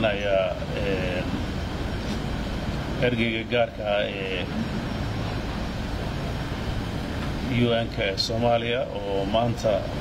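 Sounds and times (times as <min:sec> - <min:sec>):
man speaking: 0:00.0 - 0:01.4, 0:03.0 - 0:04.6, 0:07.4 - 0:10.0
low rumble and hiss: 0:00.0 - 0:10.0.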